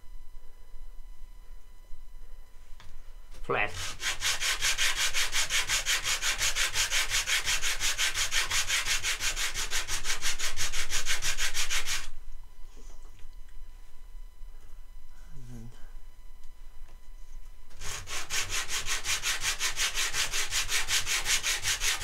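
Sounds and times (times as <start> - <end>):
wooden block rasping on sandpaper: 3.8 - 12.1, 17.8 - 22.0.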